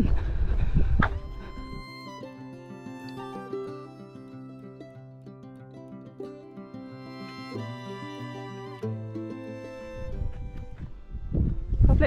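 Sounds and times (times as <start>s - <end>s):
wind rumbling on microphone: 0.0s - 1.9s, 9.9s - 12.0s
music with plucked strings: 1.0s - 12.0s.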